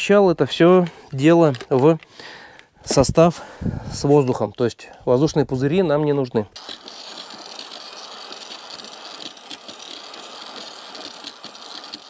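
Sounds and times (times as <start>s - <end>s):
electric drill mixer whirring: 6.6s - 12.0s
liquid churning: 6.6s - 12.0s.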